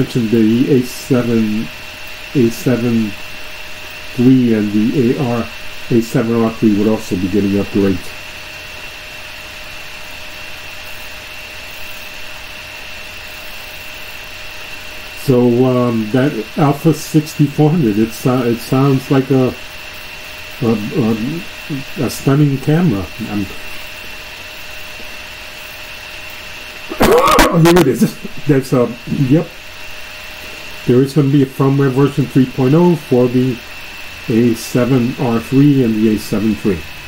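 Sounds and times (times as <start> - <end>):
background hum and hiss: 0.0 - 37.0.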